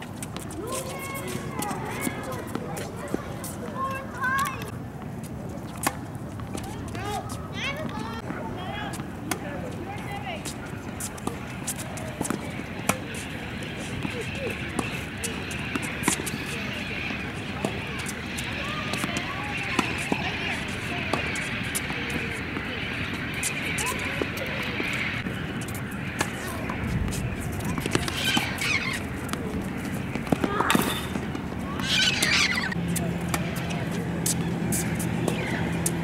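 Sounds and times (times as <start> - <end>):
distant voices chattering: 0.0 - 36.0
tennis balls struck by rackets: 5.6 - 7.1, 8.9 - 36.0.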